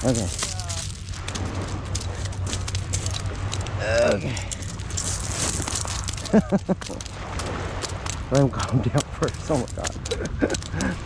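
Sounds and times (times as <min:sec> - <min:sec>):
pebbles clicking and clattering: 0:00.0 - 0:08.4, 0:09.0 - 0:11.0
steady low hum: 0:00.0 - 0:11.0.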